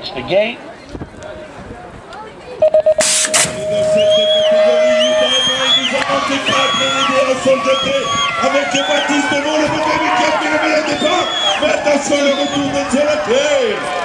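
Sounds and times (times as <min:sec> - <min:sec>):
long steady electronic tone: 0:02.6 - 0:05.8
quick electronic beeps: 0:02.6 - 0:05.8
spectators shouting and cheering: 0:03.4 - 0:14.0.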